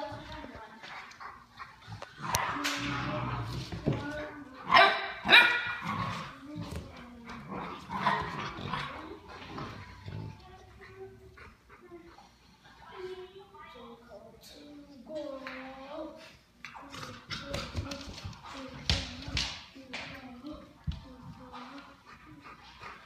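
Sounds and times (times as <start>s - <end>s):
dogs barking and yipping: 4.6s - 6.0s.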